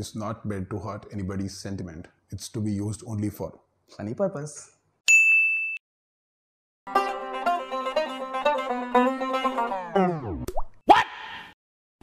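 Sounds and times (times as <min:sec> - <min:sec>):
banjo music winding down: 0:06.9 - 0:10.4.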